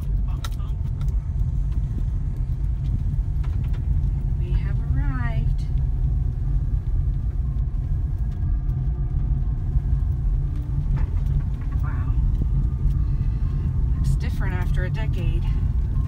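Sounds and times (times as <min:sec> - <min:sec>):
car engine and tyres rumbling: 0:00.0 - 0:16.0.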